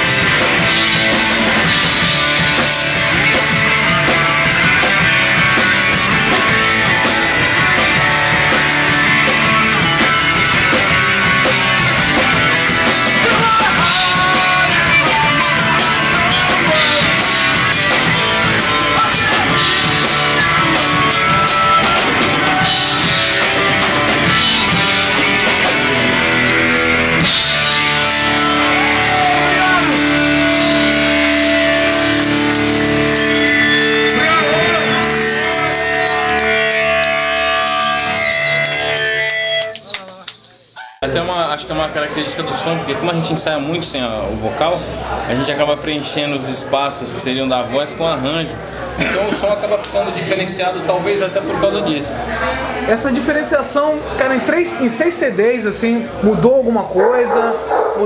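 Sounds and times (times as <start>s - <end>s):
drum kit with cymbal hits: 0.0s - 39.8s
electric guitars: 0.0s - 39.9s.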